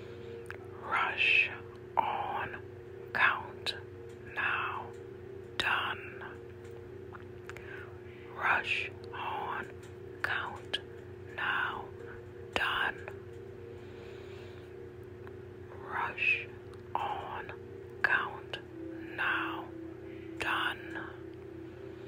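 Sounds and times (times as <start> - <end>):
steady low hum: 0.0 - 22.0
person whispering a chant: 0.5 - 5.0, 5.6 - 6.5, 7.5 - 13.3, 15.7 - 21.4.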